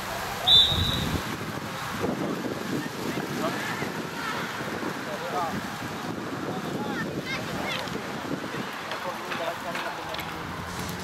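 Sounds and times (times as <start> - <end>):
referee's whistle blast: 0.4 - 1.2
wind buffeting microphone: 0.6 - 11.0.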